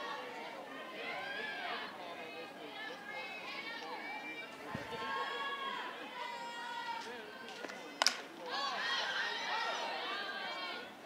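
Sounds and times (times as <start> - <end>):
crowd voices: 0.0 - 11.0
bat cracking a ball: 7.5 - 8.3.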